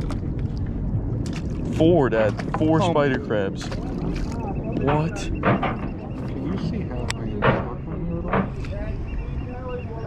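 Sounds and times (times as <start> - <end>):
indistinct talking: 1.8 - 10.0.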